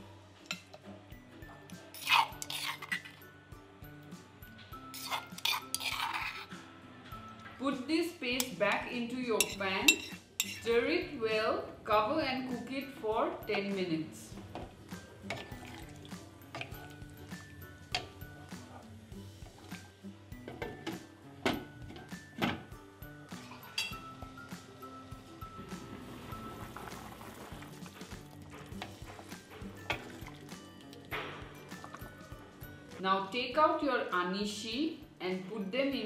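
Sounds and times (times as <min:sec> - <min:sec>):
background music: 0:00.0 - 0:36.0.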